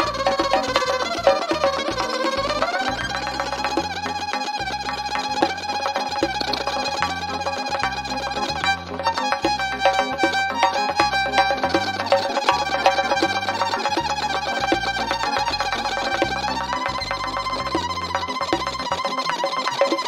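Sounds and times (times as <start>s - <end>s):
bowed violin folk tune: 0.0s - 20.0s
rhythmic bass accompaniment: 0.0s - 20.0s.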